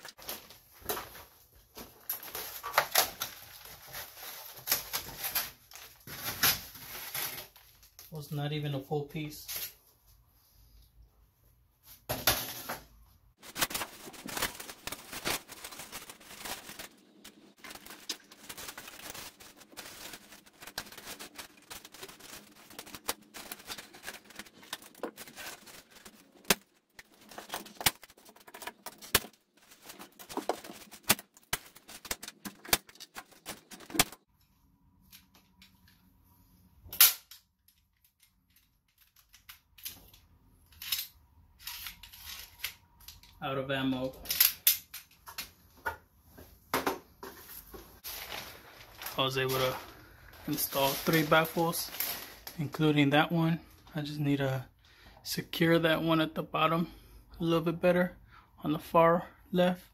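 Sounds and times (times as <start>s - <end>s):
rigid plastic crackling: 0.0s - 8.2s, 13.4s - 34.3s, 47.6s - 53.9s.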